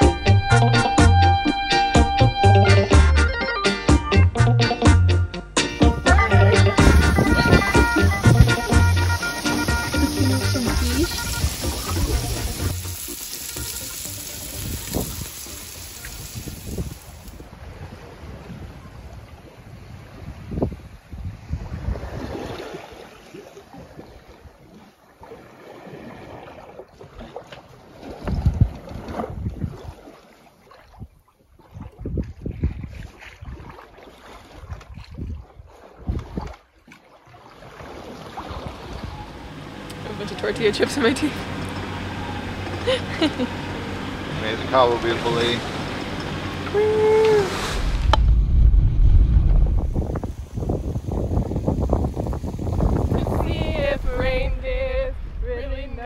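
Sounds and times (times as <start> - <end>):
background music: 0.0 - 14.6
sea wash: 5.6 - 56.0
wind gusts on microphone: 6.8 - 8.7, 14.4 - 23.0, 28.2 - 30.0, 31.0 - 33.7, 34.6 - 36.6, 46.8 - 56.0.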